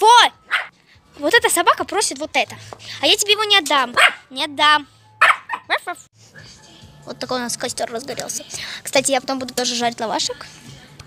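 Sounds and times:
small dog yapping: 0:00.4 - 0:00.7, 0:04.0 - 0:04.3, 0:05.2 - 0:05.7.

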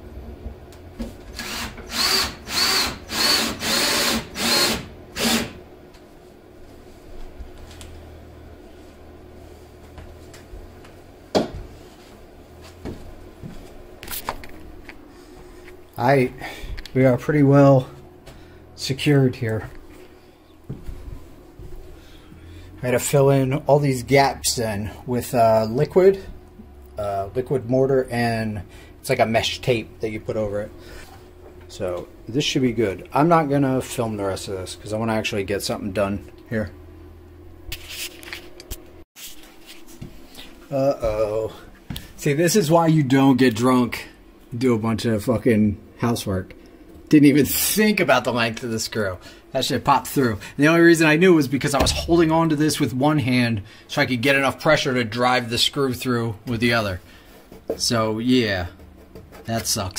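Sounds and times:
rustling and scraping handling noise: 0:11.6 - 0:15.9, 0:37.7 - 0:40.7, 0:56.6 - 0:59.9.

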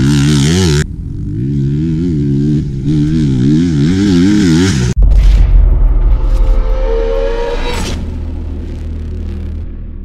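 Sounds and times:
low rumble: 0:04.9 - 0:10.0
whoosh: 0:05.0 - 0:10.0.

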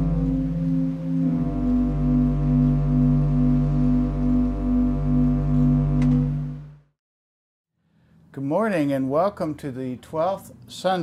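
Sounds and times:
organ chords with tremolo: 0:00.0 - 0:06.9.

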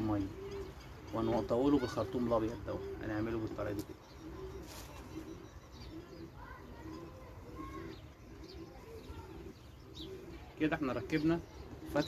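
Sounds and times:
bird chirps: 0:00.0 - 0:12.0
pigeons cooing: 0:00.0 - 0:12.0.

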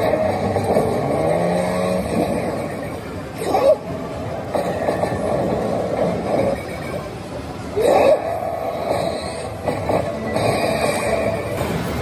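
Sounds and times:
gaming parlour din: 0:00.0 - 0:12.0
slot machine sound effects: 0:00.0 - 0:12.0.

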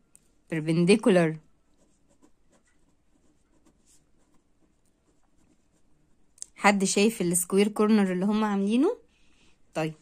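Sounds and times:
pen scratching on paper: 0:01.6 - 0:06.2.

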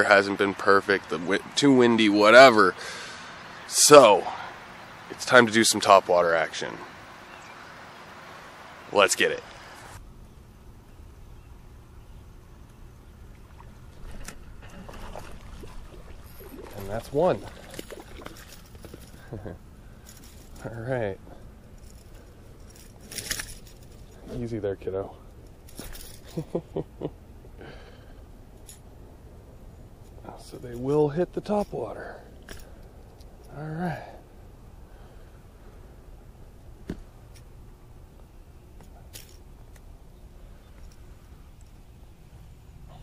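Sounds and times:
low steady rumble: 0:00.0 - 0:43.0
fish splashing out of water: 0:14.6 - 0:18.7.

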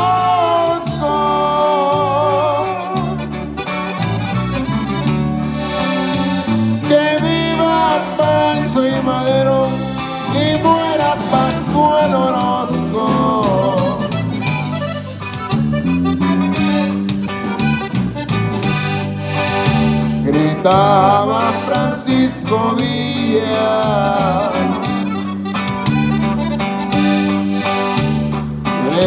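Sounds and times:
bass: 0:00.0 - 0:29.0
button accordion melody: 0:00.0 - 0:29.0
strummed guitar: 0:00.0 - 0:29.0.

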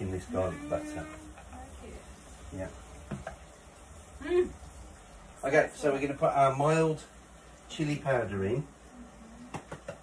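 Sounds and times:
onions frying in oil: 0:00.0 - 0:10.0.

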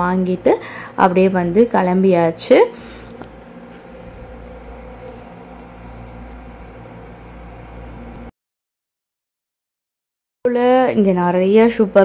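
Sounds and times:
indoor shop hum and hiss: 0:00.0 - 0:08.3.

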